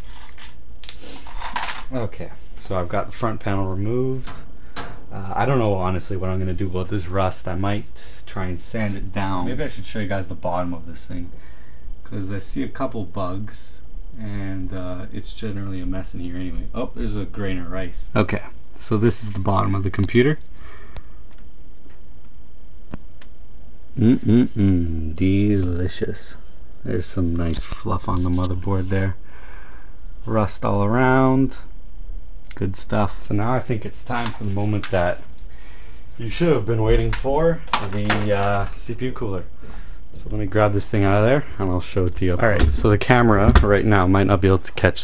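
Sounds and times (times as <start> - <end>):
low hum: 0.0 - 45.0.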